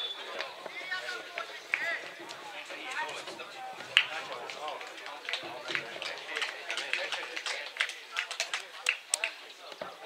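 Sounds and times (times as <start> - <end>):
players talking and calling out: 0.0 - 10.0.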